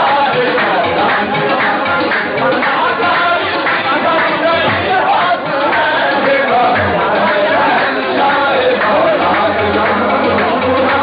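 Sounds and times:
men singing together: 0.0 - 11.0.

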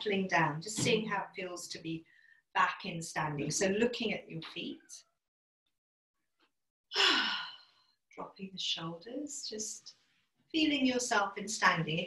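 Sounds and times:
woman sighing: 7.0 - 7.7.

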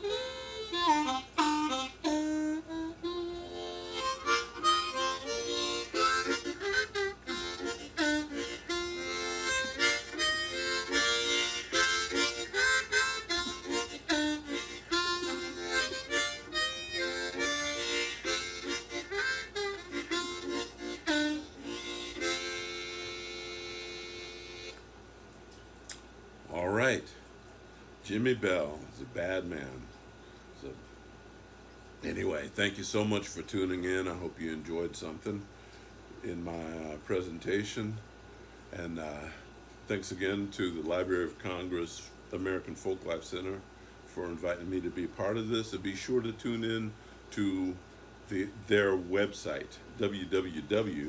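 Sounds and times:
blues harmonica playing: 0.0 - 24.8, 48.4 - 51.0.

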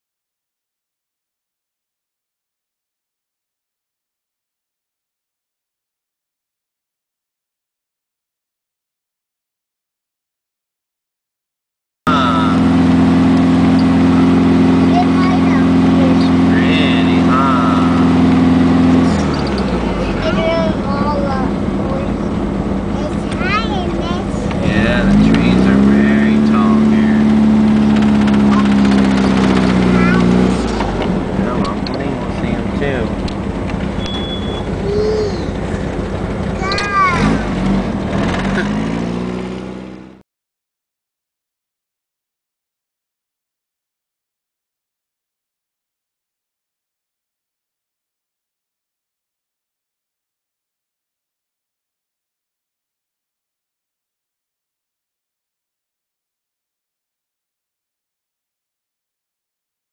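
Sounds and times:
voices talking: 12.1 - 12.8, 13.7 - 37.7
car engine droning: 12.1 - 40.2.

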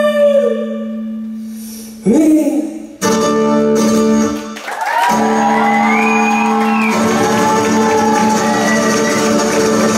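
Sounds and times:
live acoustic music: 2.8 - 9.9
audience whooping: 4.6 - 9.9.

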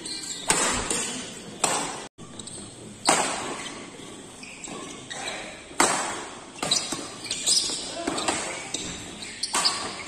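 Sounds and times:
badminton racket hitting shuttlecock: 0.3 - 2.1, 3.0 - 3.7, 5.7 - 10.0.

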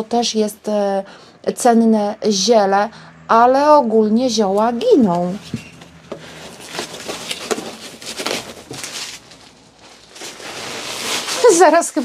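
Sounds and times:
bubble wrap rustling and crinkling: 6.2 - 12.0.

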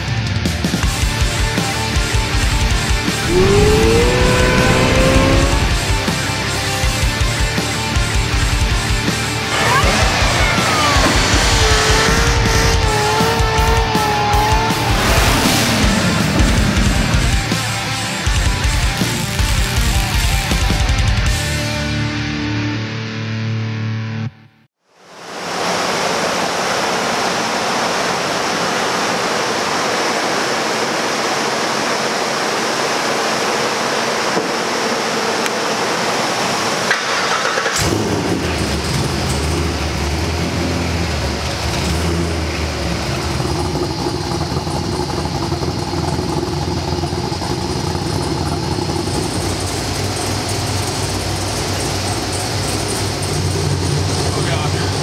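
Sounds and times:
loud steady rushing noise: 1.7 - 20.7, 25.1 - 37.3
car engine rumbling: 2.2 - 20.6, 35.6 - 55.0
music sting: 3.1 - 6.6.

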